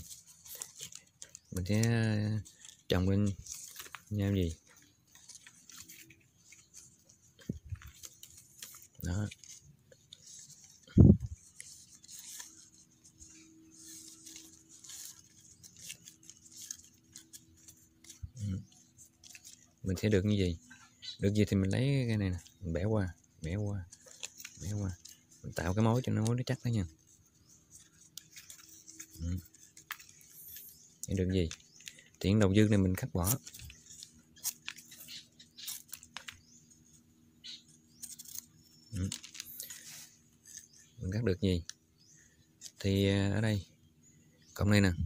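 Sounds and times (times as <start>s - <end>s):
palm leaf rustling: 0.0s - 45.0s.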